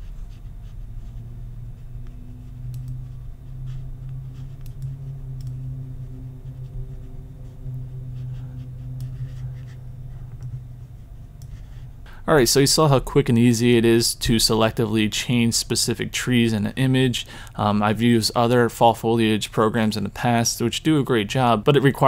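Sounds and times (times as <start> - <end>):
computer mouse scratching: 0.0 - 11.9
steady low hum: 0.0 - 22.0.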